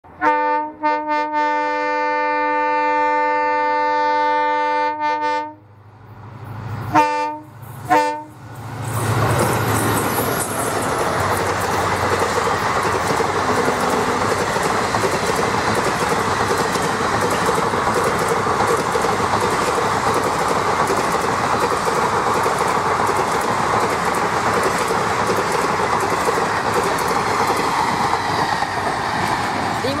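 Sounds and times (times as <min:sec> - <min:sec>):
train passing at high speed: 0:00.0 - 0:30.0
locomotive air horn: 0:00.2 - 0:05.6, 0:06.9 - 0:08.4
wheel clatter on rails: 0:08.9 - 0:30.0.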